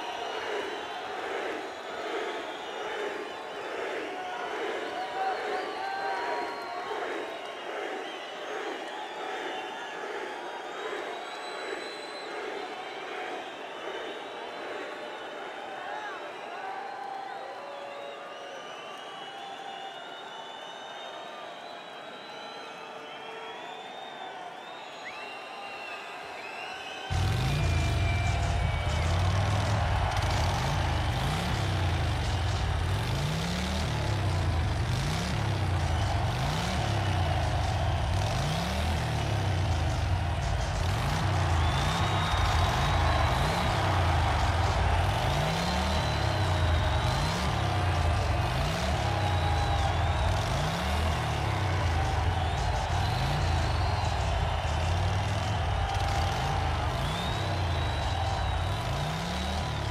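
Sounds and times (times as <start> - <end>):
motorcycle engine revving: 27.1 - 59.9.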